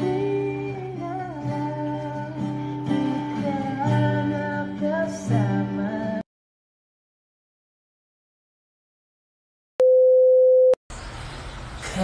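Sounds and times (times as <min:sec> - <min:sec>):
pure test tone beep: 0:09.8 - 0:10.8.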